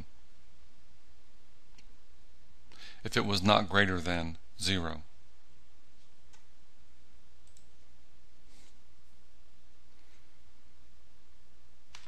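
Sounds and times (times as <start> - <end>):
low electrical hum: 0.0 - 12.0
computer mouse clicks: 7.4 - 7.8.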